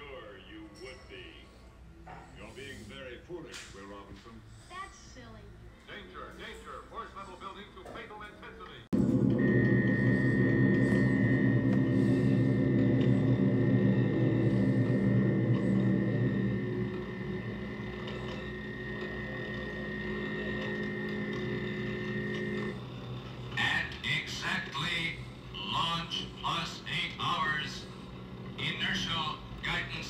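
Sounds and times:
low electrical hum: 0:00.0 - 0:30.0
high electronic whine: 0:09.0 - 0:23.0.

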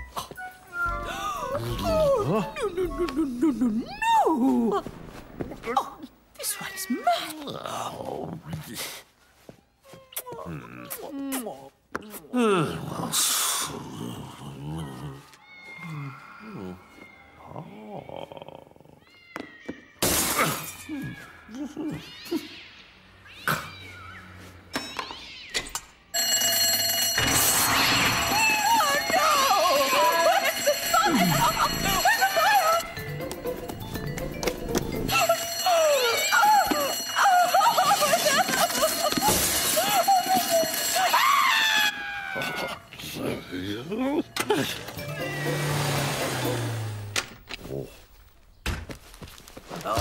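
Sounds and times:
background music: 0:00.0 - 0:03.9, 0:29.9 - 0:36.4, 0:43.1 - 0:47.4
cartoon cats meowing and yowling: 0:15.4 - 0:20.0, 0:20.7 - 0:24.2
fire alarm bell ringing: 0:26.1 - 0:41.9.

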